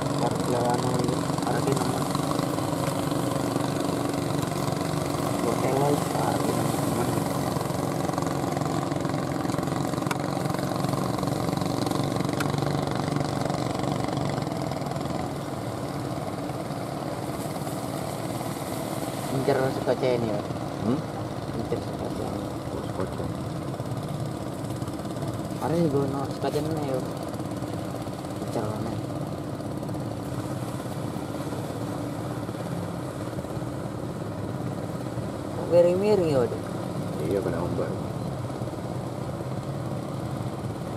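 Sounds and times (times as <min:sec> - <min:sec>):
boat engines running: 0:00.0 - 0:40.9.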